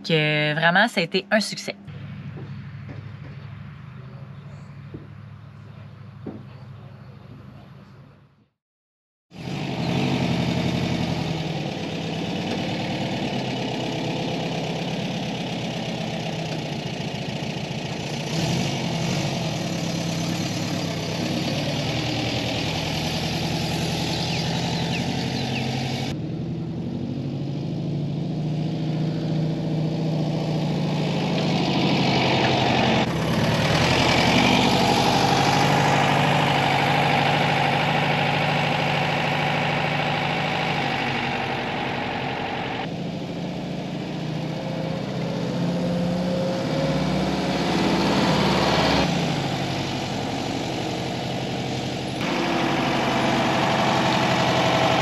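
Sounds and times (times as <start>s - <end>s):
engine idling: 1.8s - 8.1s, 9.4s - 26.8s, 31.3s - 45.0s, 48.7s - 55.0s.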